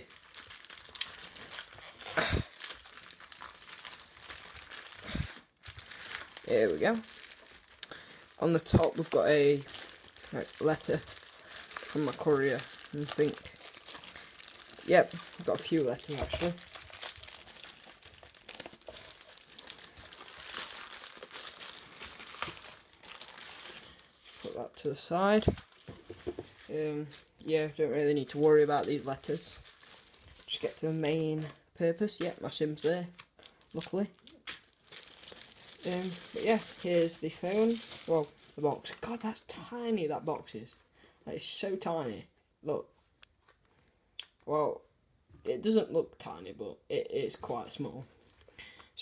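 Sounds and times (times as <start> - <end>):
plastic bag crinkling: 0.0 - 27.5, 28.2 - 31.6, 32.2 - 39.4.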